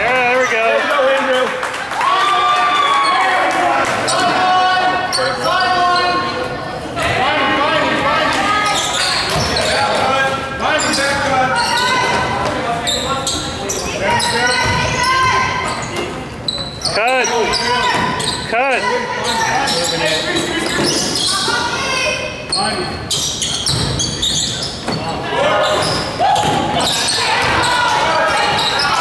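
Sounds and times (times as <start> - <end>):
voices in a hall: 0.0 - 29.0.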